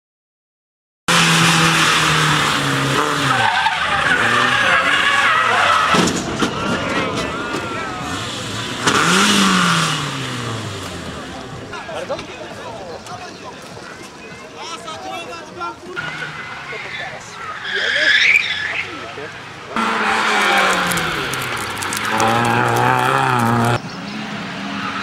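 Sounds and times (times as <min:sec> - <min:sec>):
car engine revving: 0:01.1 - 0:11.7, 0:19.4 - 0:25.0
tyres squealing and skidding: 0:01.2 - 0:12.5, 0:15.8 - 0:25.0.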